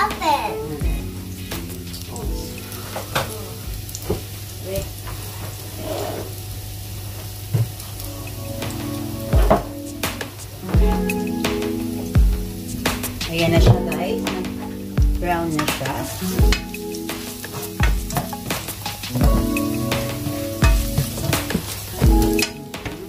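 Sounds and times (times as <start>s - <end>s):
garlic sizzling in hot oil: 0.1s - 23.0s
oil crackling and popping: 14.3s - 23.0s.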